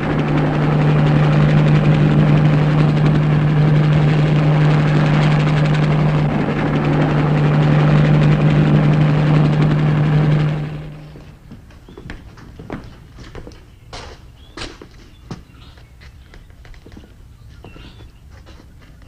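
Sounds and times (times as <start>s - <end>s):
helicopter engine and rotor drone: 0.0s - 13.2s.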